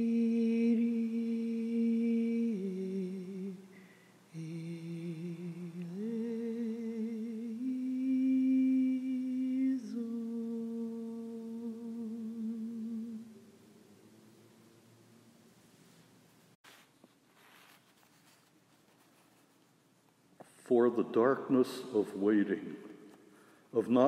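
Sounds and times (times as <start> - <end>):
person humming a slow melody: 0.0 - 13.5.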